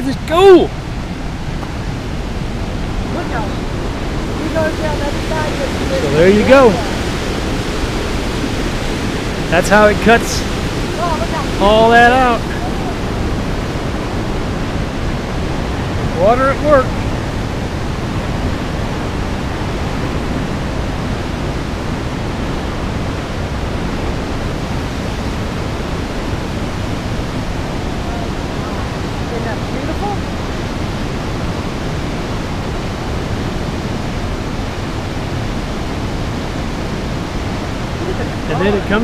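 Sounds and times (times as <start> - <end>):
river rushing white water: 0.0 - 39.0.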